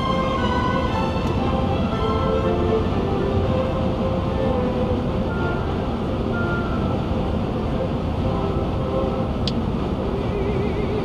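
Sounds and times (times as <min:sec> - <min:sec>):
car road and tyre noise: 0:00.0 - 0:11.0.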